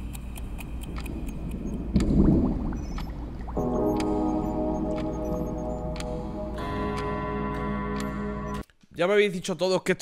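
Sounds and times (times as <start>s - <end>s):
clock ticking: 0.0s - 8.6s
low hum: 0.0s - 8.6s.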